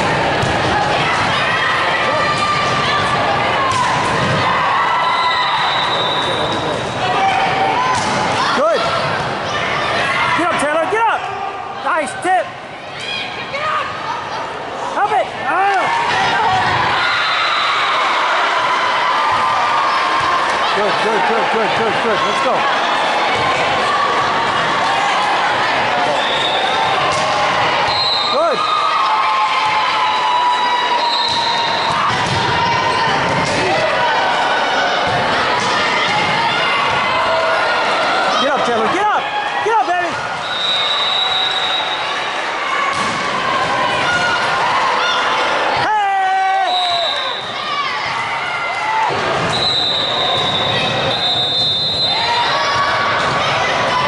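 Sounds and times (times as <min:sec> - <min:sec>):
volleyball hits and bounces: 0:00.0 - 0:01.5, 0:02.1 - 0:04.6, 0:07.8 - 0:09.4, 0:26.8 - 0:27.8, 0:31.3 - 0:34.0, 0:42.9 - 0:44.6.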